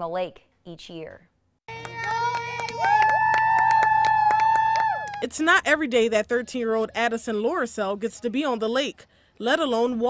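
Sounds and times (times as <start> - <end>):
clapping: 1.7 - 5.2
spectators cheering with whoops: 2.0 - 5.2.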